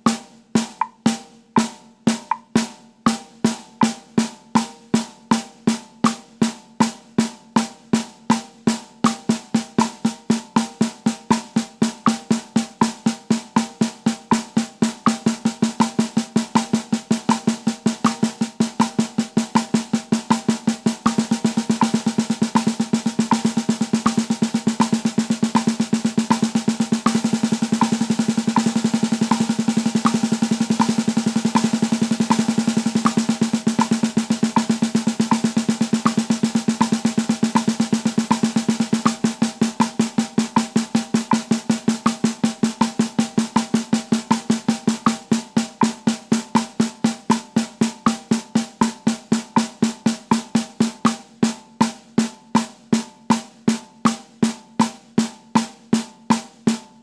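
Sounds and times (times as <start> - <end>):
snare drum strokes: 0.0 - 57.0.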